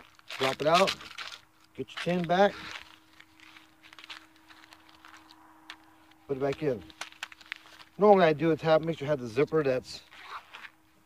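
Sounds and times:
pellet tin rustling and clicking: 0:00.0 - 0:05.3
faint steady hum: 0:00.0 - 0:11.0.

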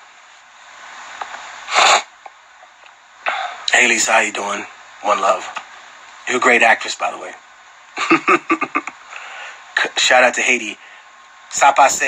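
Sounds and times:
man's forceful breath: 0:03.2 - 0:03.6, 0:09.1 - 0:09.7.

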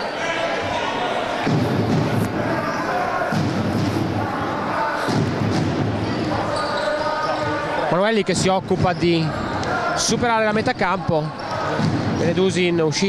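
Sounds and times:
crowd and player voices: 0:00.0 - 0:13.0.

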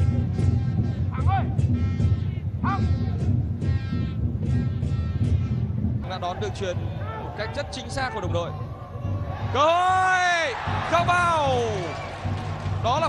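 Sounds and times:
fans drumming: 0:00.0 - 0:13.0.

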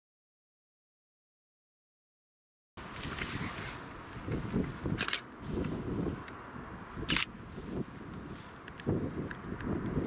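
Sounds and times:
wind buffeting microphone: 0:02.8 - 0:10.0.

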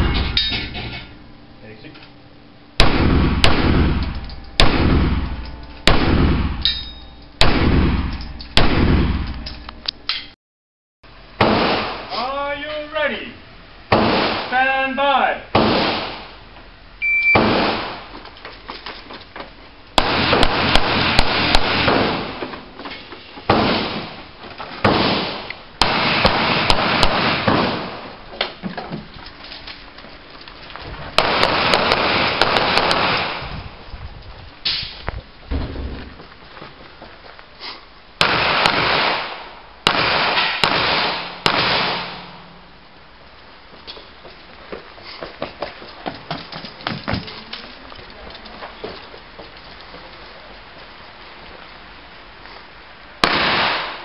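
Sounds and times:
pistol shots with echo: 0:02.8 - 0:04.0, 0:04.6 - 0:06.6, 0:07.4 - 0:09.2, 0:13.9 - 0:14.5, 0:15.6 - 0:16.3, 0:20.0 - 0:22.4, 0:24.8 - 0:28.1, 0:31.2 - 0:33.5, 0:38.2 - 0:42.4, 0:53.2 - 0:54.0
shot timer beep: 0:17.0 - 0:17.4.

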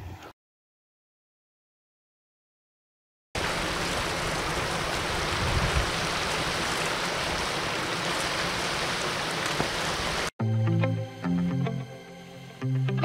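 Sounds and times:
river water splashing over rocks: 0:03.4 - 0:10.3.

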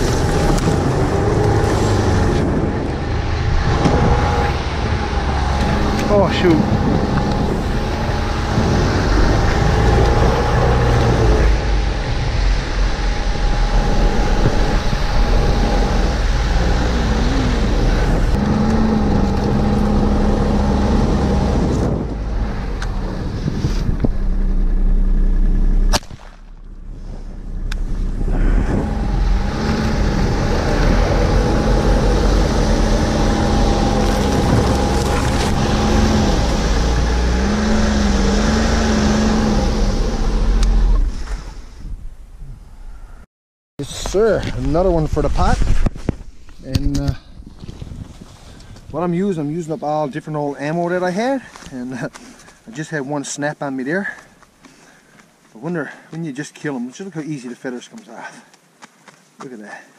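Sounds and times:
snowmobile engine running: 0:00.0 - 0:25.9, 0:26.9 - 0:40.7
shotgun shot: 0:25.9 - 0:26.5.

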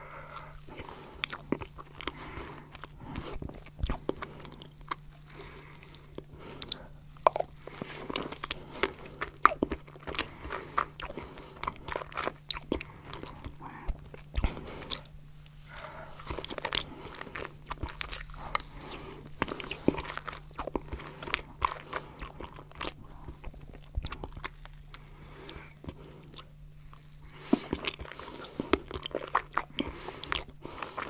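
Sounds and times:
faint crunching of chocolate flakes: 0:00.0 - 0:31.0
soft chewing: 0:00.0 - 0:31.0
wet mouth clicks and lip smacks: 0:06.7 - 0:07.5.

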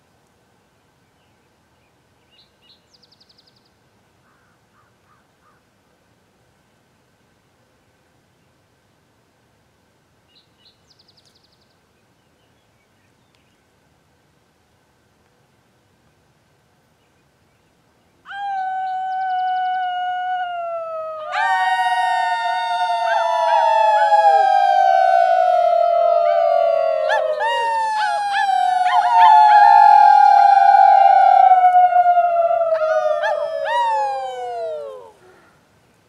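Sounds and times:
voices howling together: 0:18.3 - 0:35.3.

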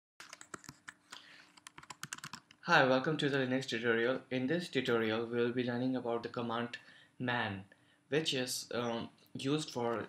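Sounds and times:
faint computer keyboard typing: 0:00.2 - 0:02.6.

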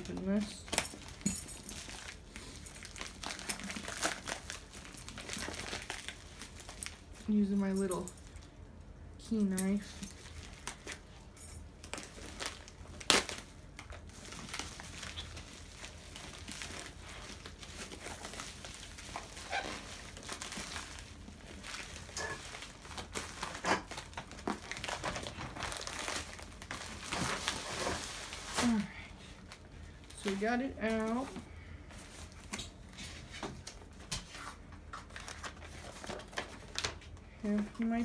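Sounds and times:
plastic mailer crinkling: 0:00.0 - 0:07.2, 0:11.8 - 0:31.3.

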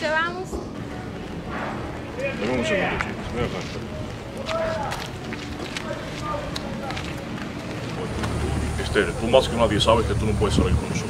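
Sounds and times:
faint voices: 0:00.0 - 0:11.0
footsteps on street: 0:00.0 - 0:11.0
outdoor ambience: 0:00.0 - 0:11.0.

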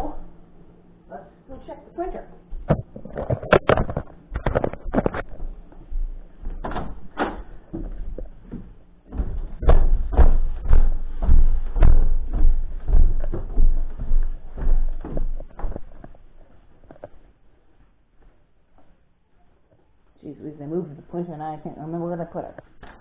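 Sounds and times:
heavy footsteps down stairs: 0:05.2 - 0:19.0
light footsteps on floor: 0:05.2 - 0:19.0.

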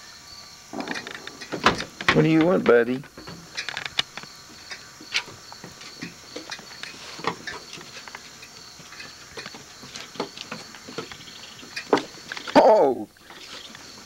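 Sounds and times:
raccoons scuffling on wooden boards: 0:00.8 - 0:12.6.

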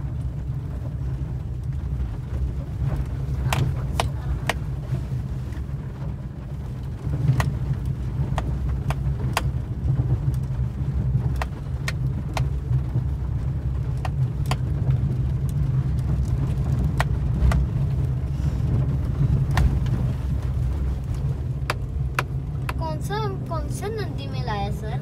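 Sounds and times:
car engine and tyres rumbling: 0:00.0 - 0:25.0.

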